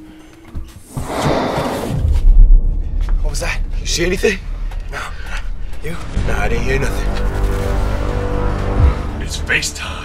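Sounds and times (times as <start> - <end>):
tense background music: 0.0 - 10.0
cinematic whoosh: 0.9 - 9.2
deep boom: 1.3 - 9.1.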